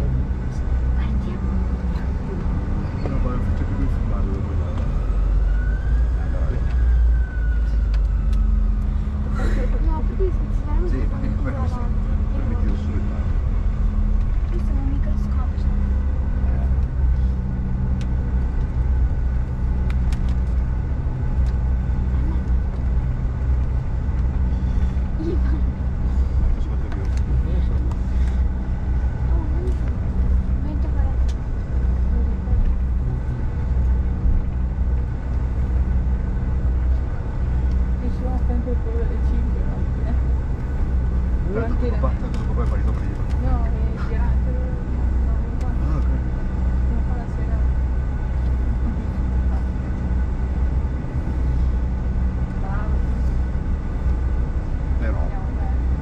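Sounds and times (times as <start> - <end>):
aircraft engine cabin rumble: 0.0 - 56.0.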